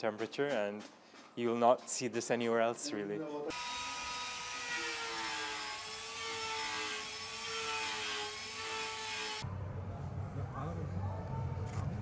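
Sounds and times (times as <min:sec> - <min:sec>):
power carving tool whining: 0:03.5 - 0:09.4.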